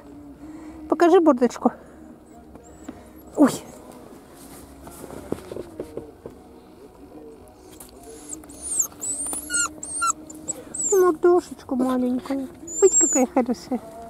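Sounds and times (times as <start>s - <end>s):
puppy whimpering and whining: 8.1s - 11.4s, 12.5s - 13.5s.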